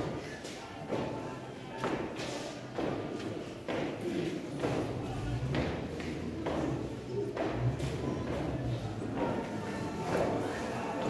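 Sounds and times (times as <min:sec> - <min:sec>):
feet stamping on tiled floor: 0:00.0 - 0:10.5
group singing: 0:04.7 - 0:11.0.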